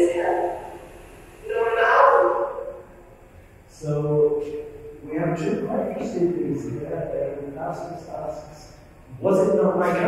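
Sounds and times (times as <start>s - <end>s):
raised voice through speakers: 3.7s - 10.0s.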